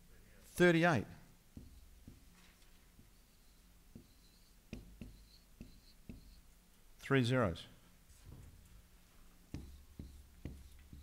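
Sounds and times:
marker squeaking on whiteboard: 0:01.6 - 0:06.6, 0:09.5 - 0:11.0.

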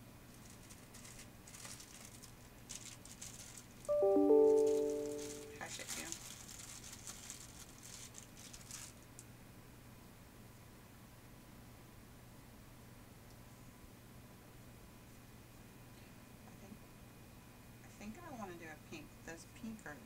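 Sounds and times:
paper and lace rustling: 0:00.3 - 0:03.9, 0:04.6 - 0:09.1
short chime: 0:03.9 - 0:05.6.

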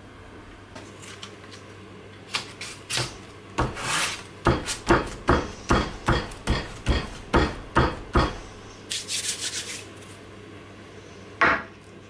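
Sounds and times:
hand-sanding wood on sandpaper: 0:03.7 - 0:04.9, 0:08.9 - 0:09.9.

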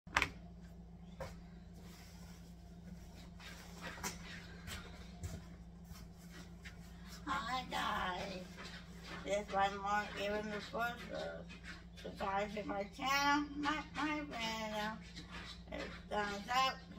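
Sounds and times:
steady low hum: 0:00.1 - 0:16.9
woman speaking: 0:07.2 - 0:15.1, 0:15.7 - 0:16.9.

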